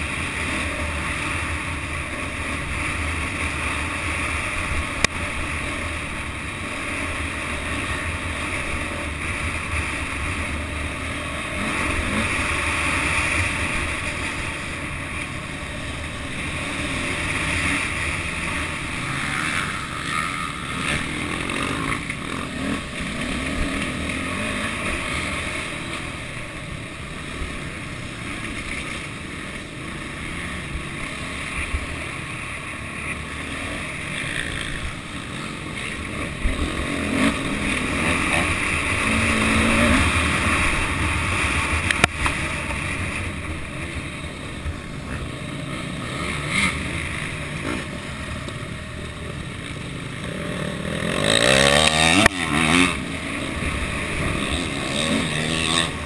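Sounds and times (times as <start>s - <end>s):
engine noise: 0.0s - 56.0s.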